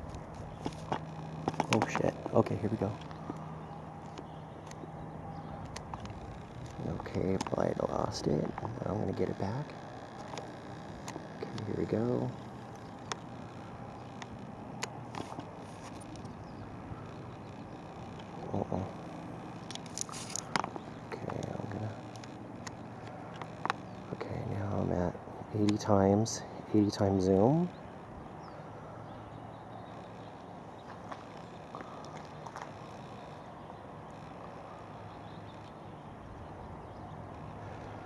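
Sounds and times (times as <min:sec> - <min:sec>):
low hum: 0:00.0 - 0:38.0
light clicks: 0:05.5 - 0:07.6, 0:25.6 - 0:25.9
camera handling clicks and crackles: 0:05.6 - 0:07.6, 0:10.2 - 0:11.7, 0:12.7 - 0:16.4, 0:19.6 - 0:20.8, 0:21.4 - 0:23.9.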